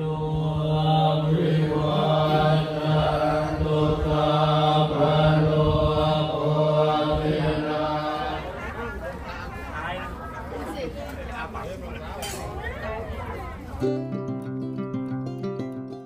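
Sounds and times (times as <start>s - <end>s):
monks chanting in unison: 0.0s - 9.2s.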